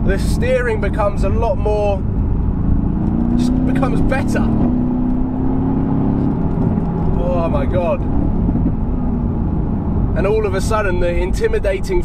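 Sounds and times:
car engine rumble inside cabin: 0.0 - 12.0
road noise: 0.0 - 12.0.

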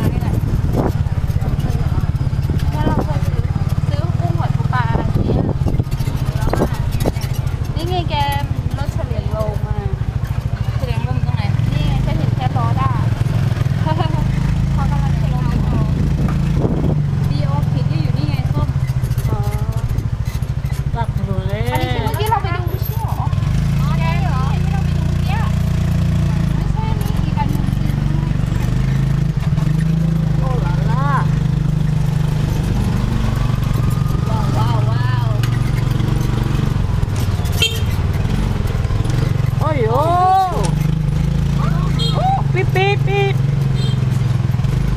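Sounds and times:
people talking: 0.0 - 10.0, 10.6 - 13.2, 13.8 - 16.1, 17.2 - 19.9, 20.9 - 25.7, 26.3 - 28.7, 30.3 - 31.4, 34.1 - 35.5, 39.6 - 40.8, 41.6 - 43.4
motor scooter engine running: 0.0 - 44.9.

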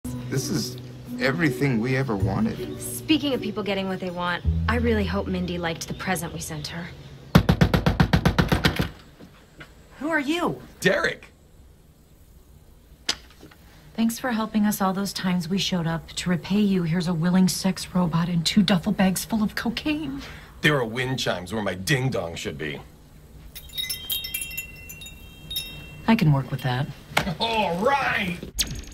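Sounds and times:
rapid sharp knocks: 7.3 - 8.9
wind chimes tinkling: 23.5 - 27.0.

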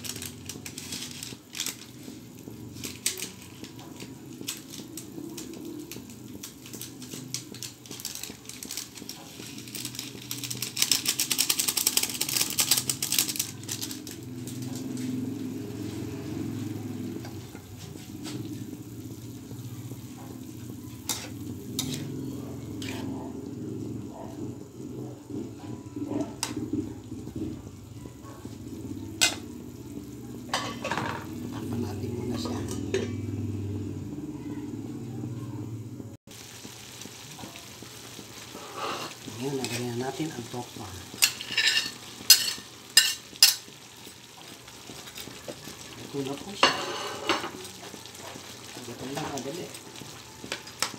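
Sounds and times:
bean sprouts sizzling in a pan: 0.0 - 35.1, 36.3 - 50.9
metal utensil clinking on pan: 29.2 - 29.4, 30.5 - 31.2, 41.2 - 43.7, 46.5 - 47.6.

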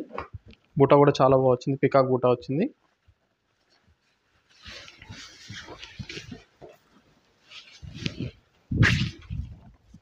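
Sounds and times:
silk fabric rustling: 2.9 - 10.0.

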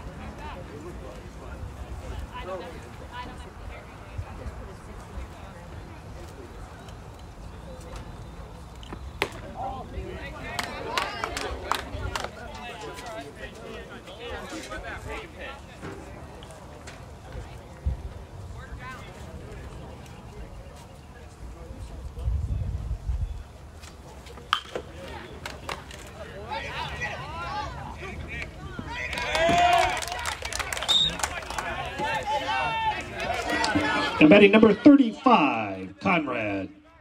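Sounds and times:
people calling out: 26.4 - 36.4.

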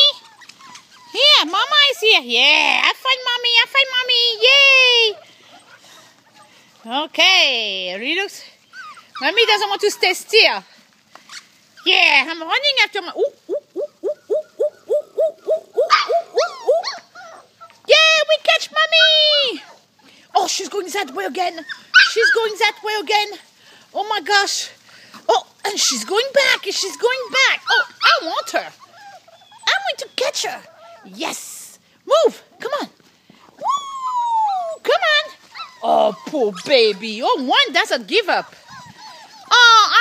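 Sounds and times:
puppies yipping and whimpering: 0.0 - 2.7, 4.4 - 6.9, 8.4 - 12.2, 13.2 - 31.2, 33.3 - 40.0.

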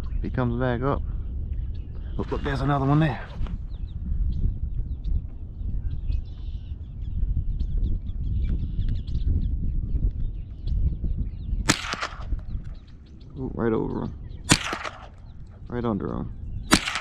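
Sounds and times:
steady low rumble: 0.0 - 17.0
rifle shot crack: 11.7 - 12.8, 14.4 - 15.7, 16.7 - 17.0.

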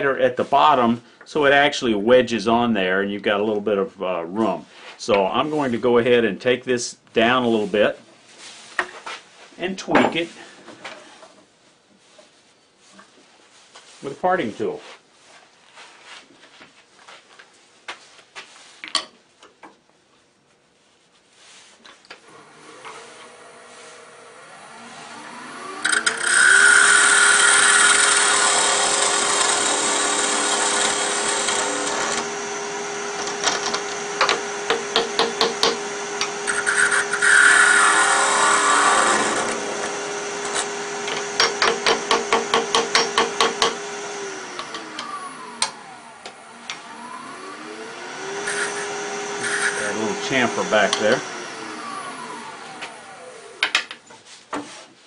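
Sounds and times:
lathe motor spinning: 22.3 - 53.6
tool scraping wood: 25.8 - 45.9, 48.1 - 53.1.

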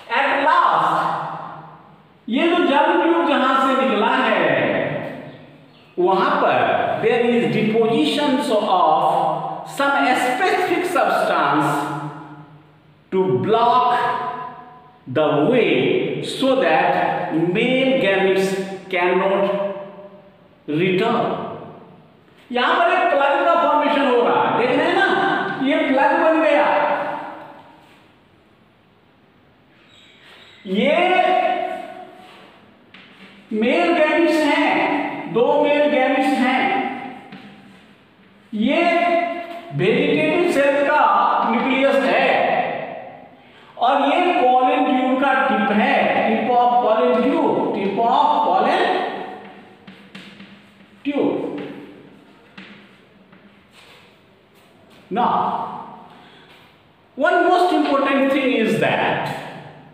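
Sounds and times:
man's voice echoing: 0.0 - 29.1, 29.7 - 59.9
faint room hiss: 0.0 - 59.9
chalk tapping on chalkboard: 49.4 - 54.1.

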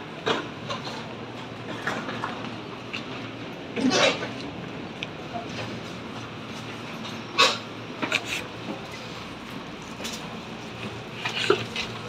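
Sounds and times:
train car running noise: 0.0 - 12.0.

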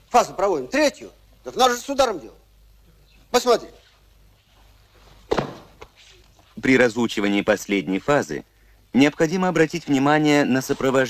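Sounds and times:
heavy body thump: 5.2 - 5.8.

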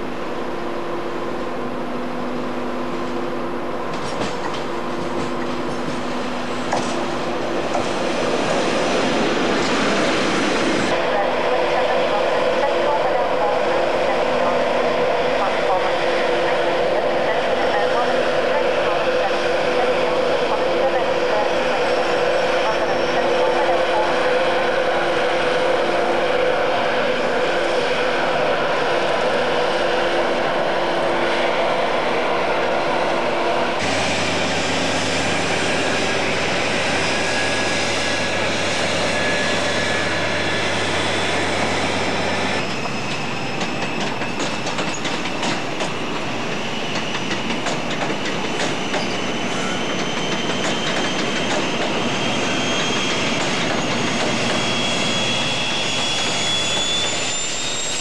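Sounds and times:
diesel train engine running: 0.0 - 58.0.

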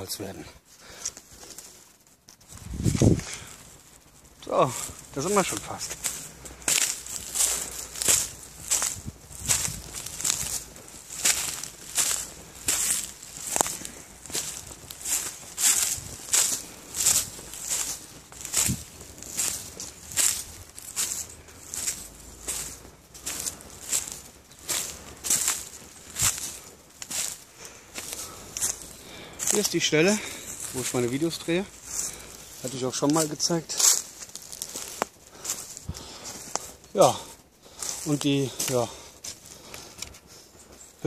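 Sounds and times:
footsteps crunching dry leaves: 0.0 - 41.0.

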